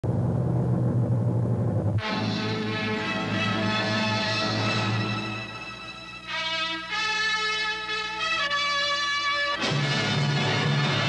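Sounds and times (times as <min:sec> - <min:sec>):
low rumbling drone: 0:00.0 - 0:03.5
theme music: 0:02.0 - 0:11.0.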